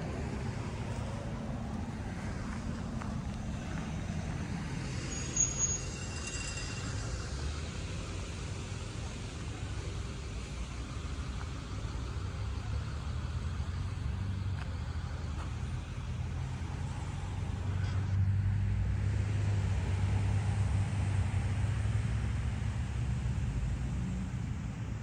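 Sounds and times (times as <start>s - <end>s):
road traffic rumble: 0.0s - 25.0s.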